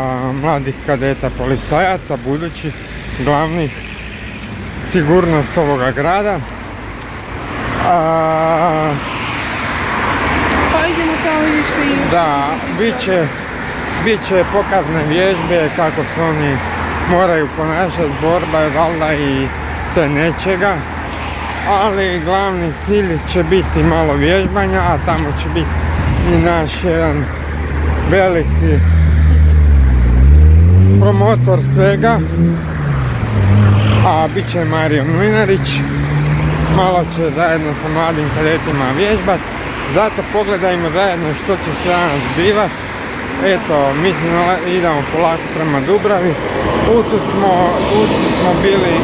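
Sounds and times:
car passing: 0:00.0 - 0:49.0
vehicle engine accelerating: 0:07.5 - 0:42.6.

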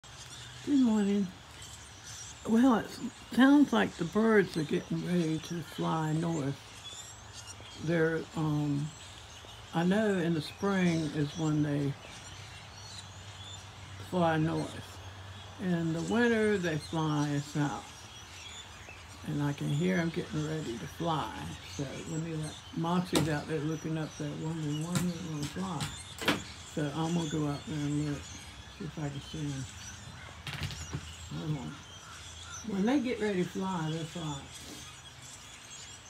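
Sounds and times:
faint bird calls: 0:00.0 - 0:36.0.

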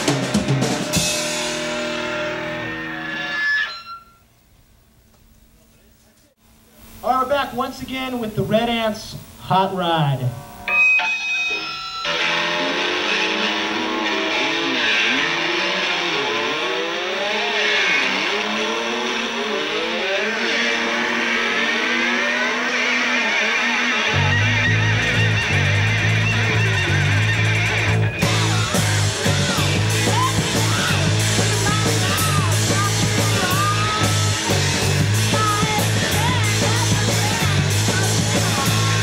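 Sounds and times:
drum kit hits: 0:00.0 - 0:02.3
electric guitars ringing chord: 0:00.0 - 0:04.0, 0:09.7 - 0:39.0.

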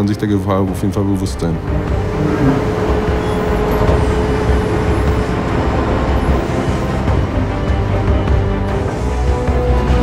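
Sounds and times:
held whine: 0:01.6 - 0:08.2
crane engine low rumble: 0:01.6 - 0:09.8.

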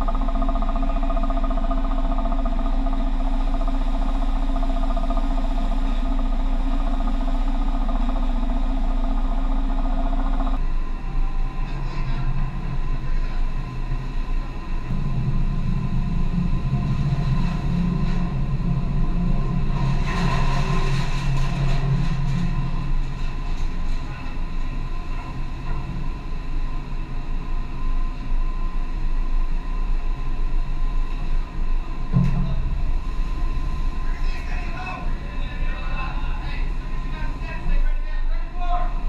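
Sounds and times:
loud low drone: 0:00.0 - 0:39.0
ship low rumble: 0:00.0 - 0:39.0
wind: 0:00.0 - 0:39.0.

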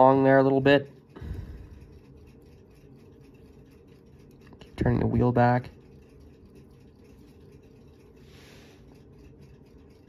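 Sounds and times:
toothpick scratching watch movement: 0:00.0 - 0:10.0.

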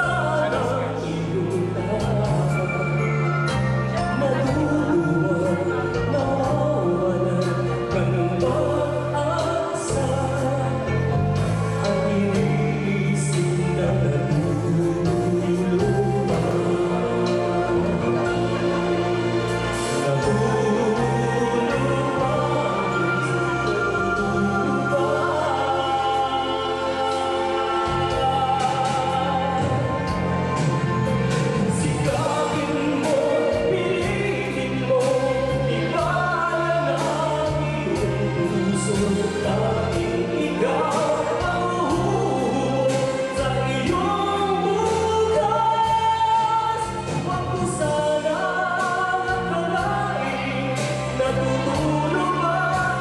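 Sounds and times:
backing track with bass and drums: 0:00.0 - 0:53.0
man singing into a microphone: 0:00.0 - 0:53.0
slow gospel ballad: 0:00.0 - 0:53.0.

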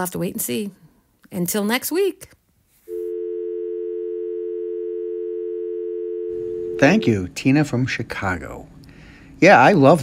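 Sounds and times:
telephone dial tone: 0:02.9 - 0:06.8.

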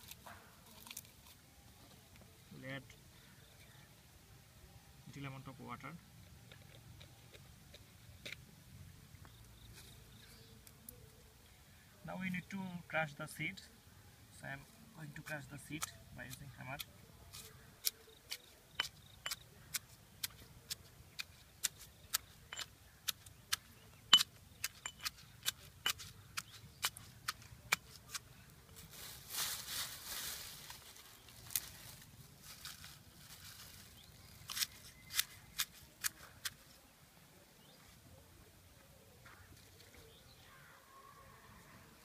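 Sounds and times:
wooden pestle pounding seeds: 0:16.8 - 0:28.2
rustling: 0:27.8 - 0:36.9.

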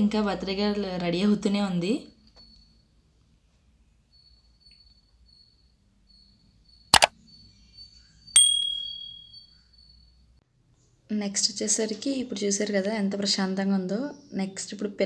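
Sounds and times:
sharp click: 0:06.9 - 0:07.1
high bell ding: 0:08.4 - 0:09.5.

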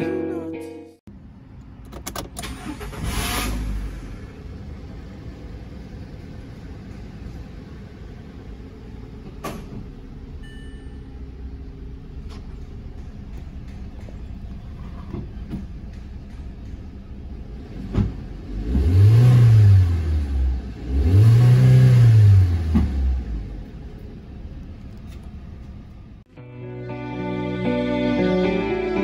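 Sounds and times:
car engine starting and idling: 0:01.1 - 0:28.8.

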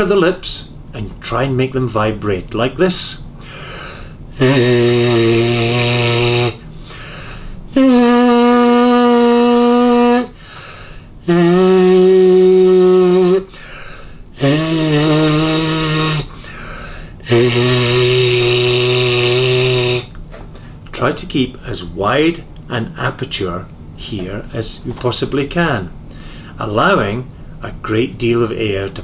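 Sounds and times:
lips buzzing held notes: 0:03.4 - 0:20.7.

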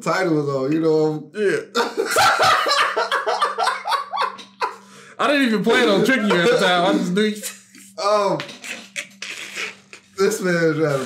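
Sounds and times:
men laughing: 0:01.8 - 0:05.0, 0:05.6 - 0:07.6.

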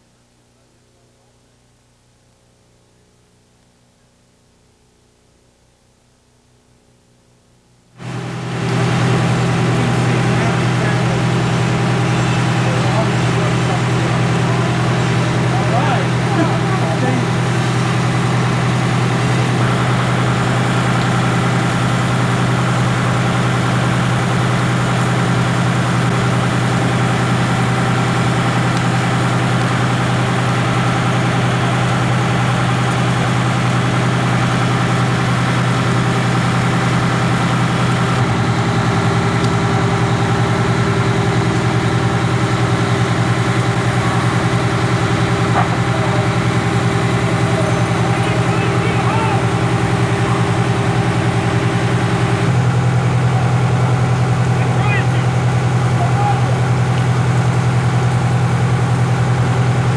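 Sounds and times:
truck engine low drone: 0:08.0 - 0:59.9.

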